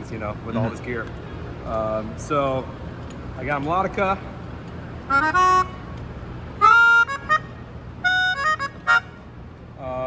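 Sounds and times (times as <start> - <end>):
melodica chords: 5.0 - 5.9, 6.6 - 9.4.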